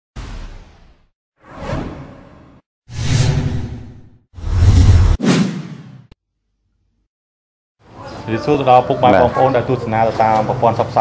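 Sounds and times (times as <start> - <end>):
whooshes: 0.2 - 6.2.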